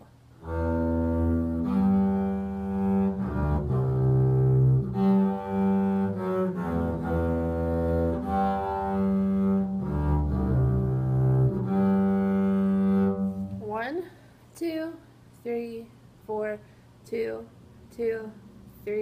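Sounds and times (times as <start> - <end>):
low bowed string music: 0.4 - 13.8.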